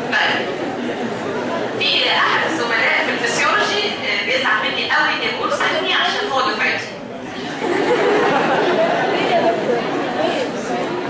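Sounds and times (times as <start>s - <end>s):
crowd chattering in a hall: 0.0s - 11.0s.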